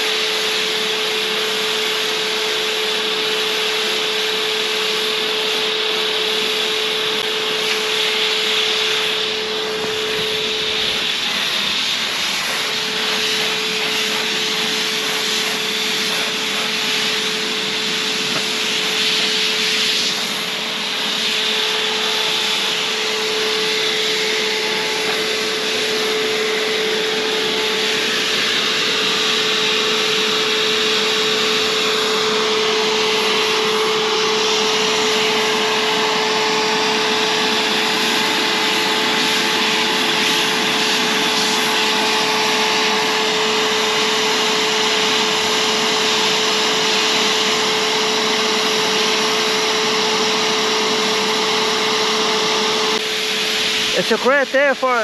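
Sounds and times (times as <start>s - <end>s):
air rushing through spray gun: 0.0s - 55.0s
paint sprayer motor whine: 0.0s - 55.0s.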